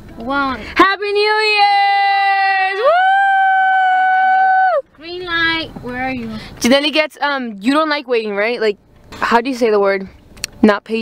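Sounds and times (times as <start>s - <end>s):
woman whooping: 2.2s - 4.9s.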